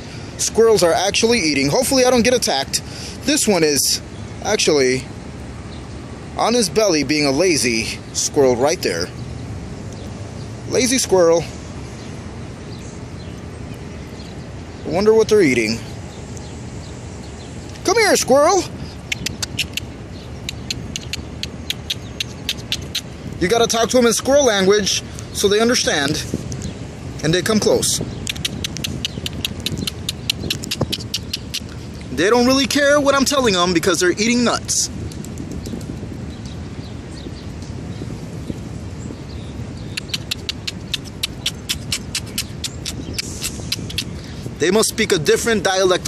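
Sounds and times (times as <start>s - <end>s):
low rumble of city traffic: 0.0s - 46.0s
squirrels cracking seeds: 19.0s - 23.1s, 28.2s - 32.1s, 39.8s - 44.2s
rapid mouth clicks: 19.0s - 23.2s, 28.2s - 32.1s, 39.8s - 44.3s.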